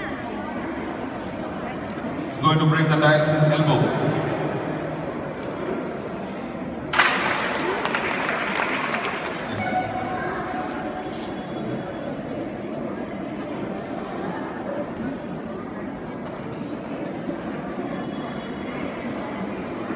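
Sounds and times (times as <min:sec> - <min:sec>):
crowd murmur: 0:00.0 - 0:19.9
audience clapping: 0:06.9 - 0:09.8.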